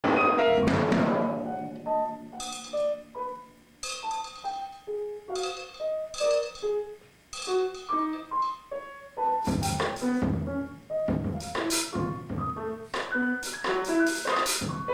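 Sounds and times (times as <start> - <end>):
drum kit hits: 0.0 - 4.7, 5.3 - 8.7, 9.4 - 14.9
grand piano notes: 0.0 - 14.9.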